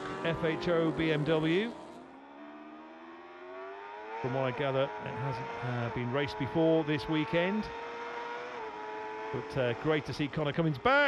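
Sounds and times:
motorcycle engine accelerating: 0.0s - 11.0s.

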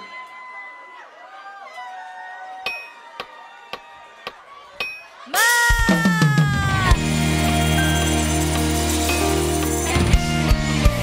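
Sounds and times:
band sustained chord: 7.0s - 11.0s.

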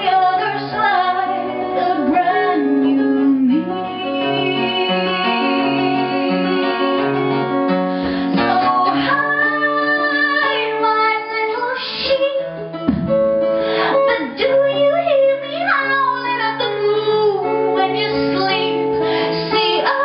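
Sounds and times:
woman singing long notes: 0.0s - 6.9s
acoustic guitar: 0.0s - 20.0s.

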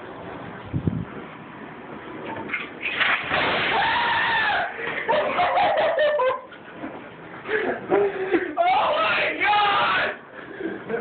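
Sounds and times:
person screaming: 3.7s - 4.8s, 8.6s - 10.2s.

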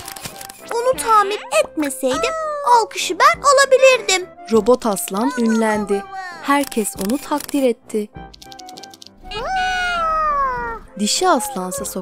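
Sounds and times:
meow-like vocal call: 9.3s - 10.8s.

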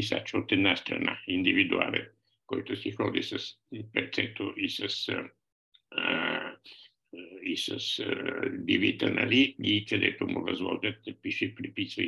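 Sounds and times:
man speaking: 0.0s - 12.0s
man's throaty hesitation sound: 5.9s - 7.4s.

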